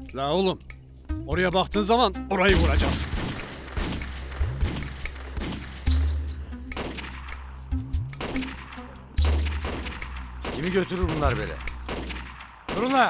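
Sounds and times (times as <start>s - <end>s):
rifle single shots: 2.5s - 6.0s, 6.8s - 7.4s, 8.2s - 13.0s.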